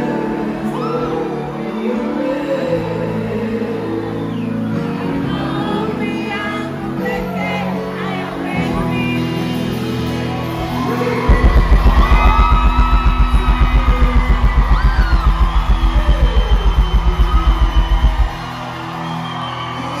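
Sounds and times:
fast low beat: 0:11.3 - 0:18.5.

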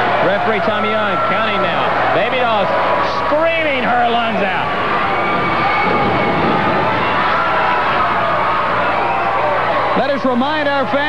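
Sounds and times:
arena crowd cheering: 0:00.0 - 0:11.0
people yelling: 0:00.0 - 0:11.0.

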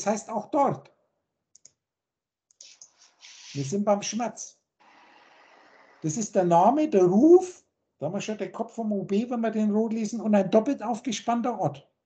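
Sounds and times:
computer mouse clicks: 0:01.6 - 0:01.8.

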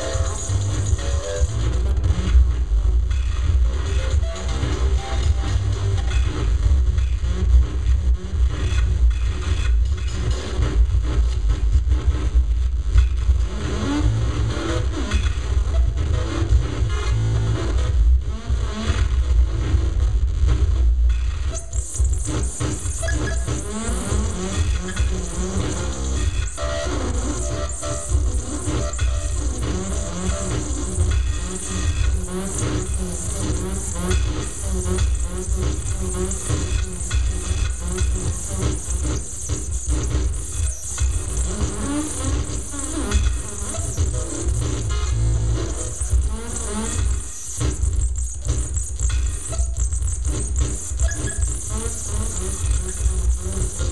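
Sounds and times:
electronic music with heavy bass: 0:00.0 - 0:53.9.

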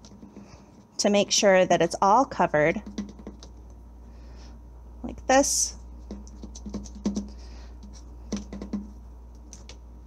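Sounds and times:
plastic bottle tapping on plate: 0:02.8 - 0:03.5, 0:06.1 - 0:07.4, 0:08.3 - 0:08.9.

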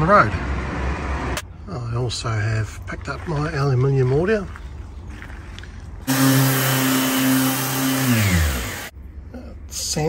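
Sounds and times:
electric sander humming: 0:06.1 - 0:08.9.

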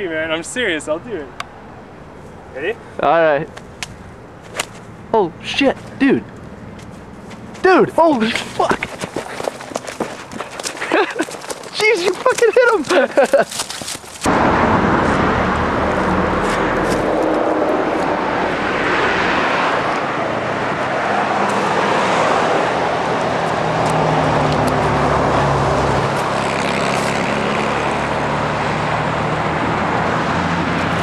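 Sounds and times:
road traffic: 0:00.0 - 0:31.0
low hum: 0:14.2 - 0:20.8.

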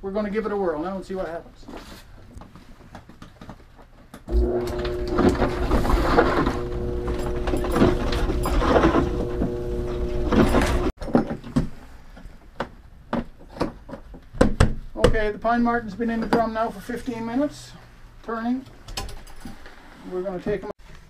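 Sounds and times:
motor hum with low rumble: 0:04.3 - 0:10.9.

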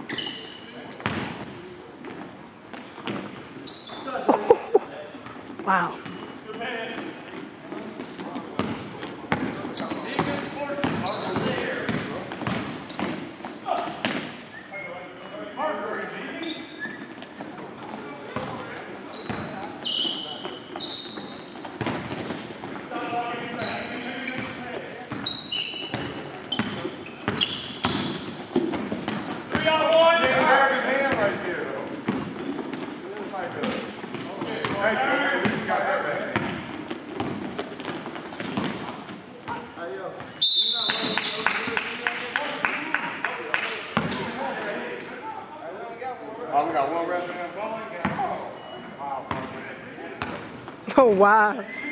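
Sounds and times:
sneakers squeaking: 0:00.0 - 0:41.8, 0:44.0 - 0:45.0, 0:45.8 - 0:50.9
basketball bouncing: 0:08.6 - 0:09.6, 0:36.3 - 0:39.6
high whistle: 0:40.4 - 0:41.2.

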